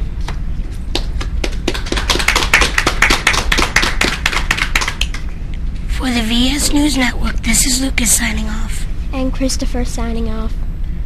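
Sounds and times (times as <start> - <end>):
people clapping: 0.9 - 5.3.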